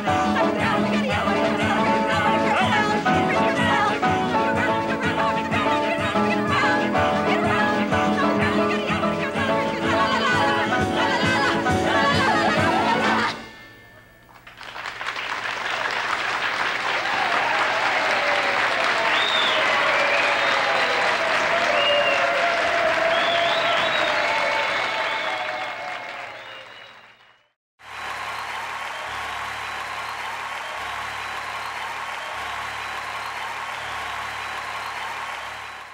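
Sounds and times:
audience applauding and cheering: 0:14.3 - 0:35.9.

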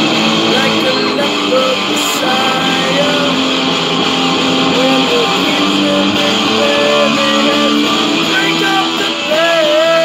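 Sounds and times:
electric guitar playing: 0:00.0 - 0:10.0
man singing: 0:00.3 - 0:03.8, 0:04.4 - 0:10.0.

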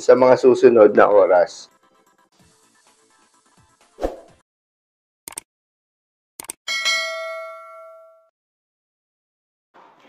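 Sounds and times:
notification bell ding: 0:06.7 - 0:08.3.

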